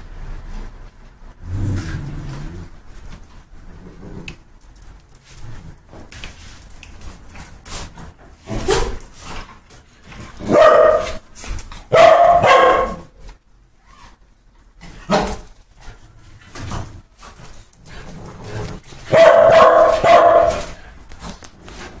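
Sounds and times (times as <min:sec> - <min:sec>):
dog barking: 0:10.4 - 0:11.2, 0:11.9 - 0:13.1, 0:19.1 - 0:20.8.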